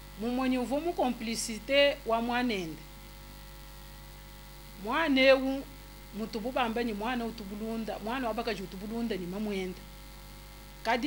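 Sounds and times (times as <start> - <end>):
low electrical hum: 0.0 - 11.0
woman's voice: 0.2 - 2.8, 4.8 - 9.8.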